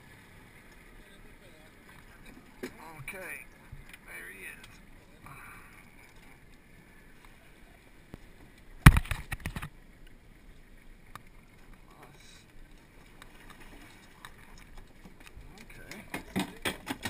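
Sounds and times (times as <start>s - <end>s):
wind and water hiss: 0.0s - 17.0s
knocks and thumps against boat: 8.8s - 9.7s, 15.0s - 17.0s.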